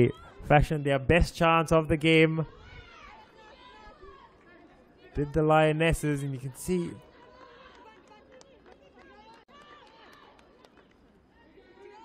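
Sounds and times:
low stadium ambience: 0:00.0 - 0:12.0.

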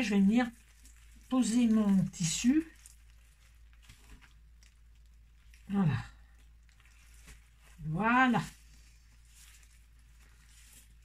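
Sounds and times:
soft handling noises: 0:00.0 - 0:11.0.

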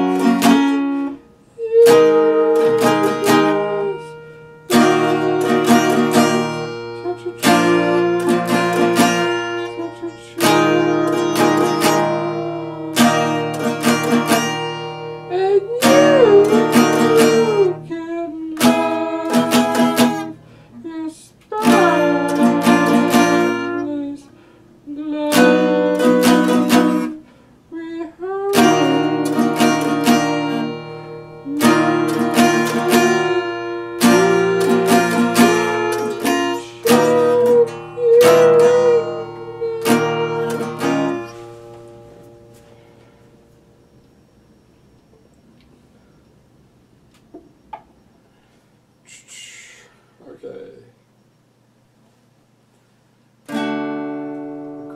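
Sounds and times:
acoustic guitar strummed chords: 0:00.0 - 0:27.6, 0:28.2 - 0:45.6, 0:53.4 - 0:54.9
man singing: 0:07.0 - 0:13.6, 0:15.3 - 0:24.3, 0:31.4 - 0:41.1.

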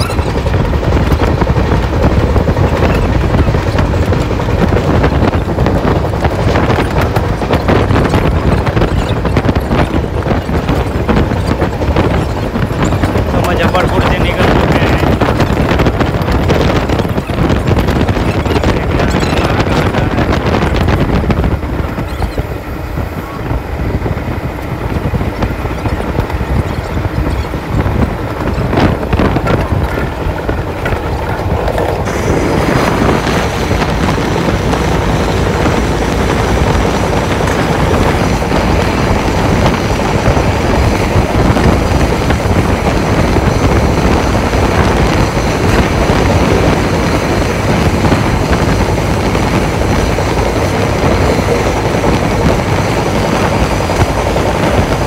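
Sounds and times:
train wheels rumbling on rails: 0:00.0 - 0:55.0
wind noise: 0:00.0 - 0:55.0.

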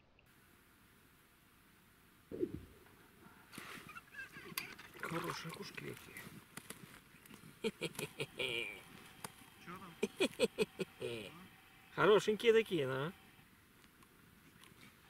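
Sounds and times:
short low falling sound: 0:02.3 - 0:02.9
low voices: 0:07.6 - 0:12.3.

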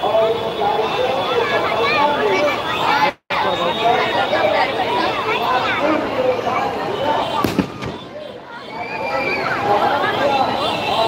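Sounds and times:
crowd chatter: 0:00.0 - 0:11.0
fireworks bangs: 0:07.4 - 0:08.4.

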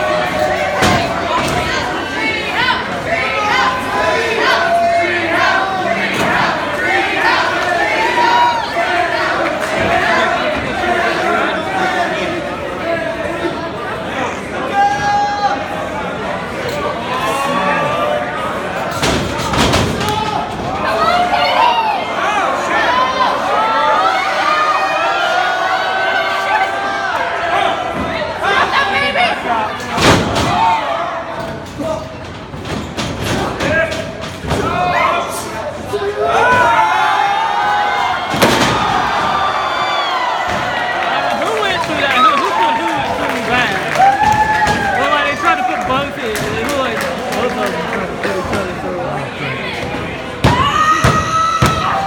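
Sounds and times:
crowd shouting and chatter: 0:00.0 - 0:52.0
body crashing onto wrestling ring: 0:38.3 - 0:39.4.

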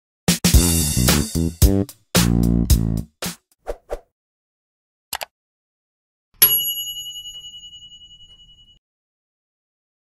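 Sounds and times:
notification bell ding: 0:06.4 - 0:08.8.

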